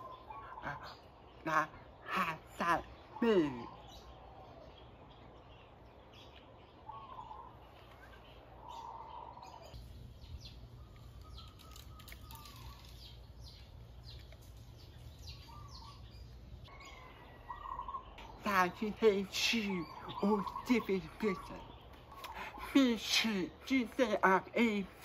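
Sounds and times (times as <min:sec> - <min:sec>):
faint bird chirps: 0:00.0 - 0:18.8.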